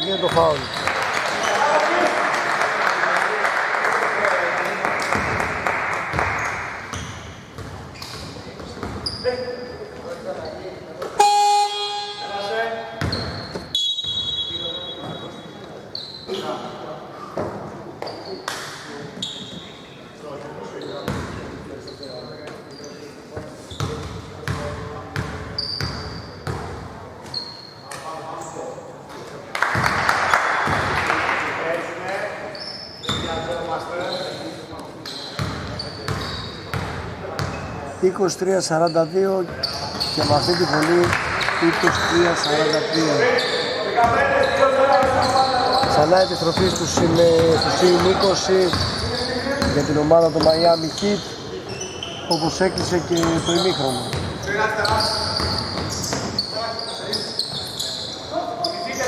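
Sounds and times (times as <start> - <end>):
sneaker squeaks: 0.0 - 1.7, 6.2 - 20.0, 20.6 - 28.8, 32.1 - 59.0
horn sounding: 11.2 - 12.5.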